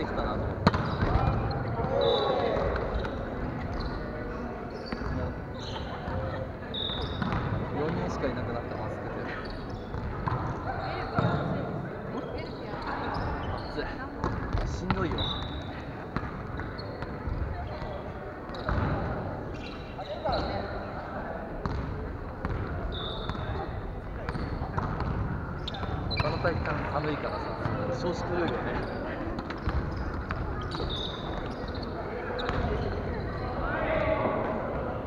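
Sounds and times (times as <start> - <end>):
players' voices in large hall: 0.0 - 35.0
volleyballs struck and bouncing: 0.4 - 2.0, 24.2 - 26.9
shoe squeaks on wooden floor: 19.5 - 20.8, 25.6 - 33.6.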